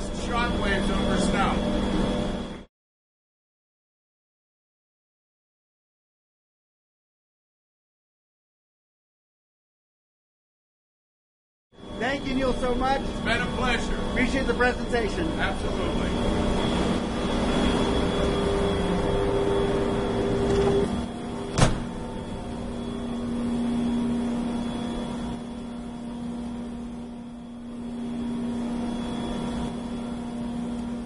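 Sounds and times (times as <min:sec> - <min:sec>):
snowmaking machine humming: 0:00.0 - 0:02.7, 0:11.8 - 0:31.0.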